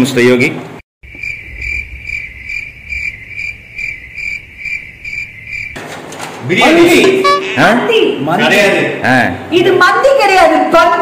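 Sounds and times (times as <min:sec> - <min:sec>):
cricket chirping: 0:01.0 - 0:05.8.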